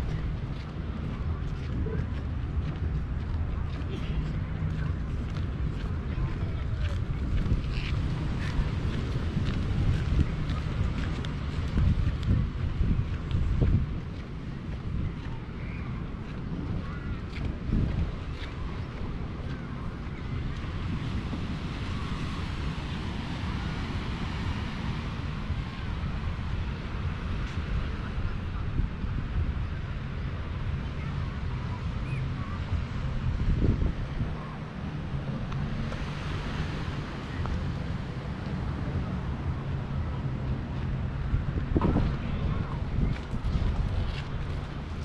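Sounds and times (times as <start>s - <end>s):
steady outdoor hiss: 0.0s - 45.0s
wind buffeting microphone: 0.0s - 45.0s.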